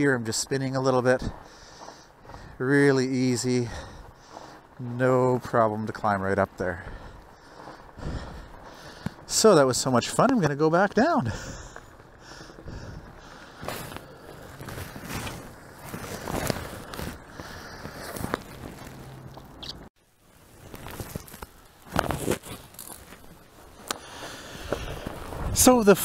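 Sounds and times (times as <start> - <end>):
tyres crunching over gravel: 0.0 - 26.0.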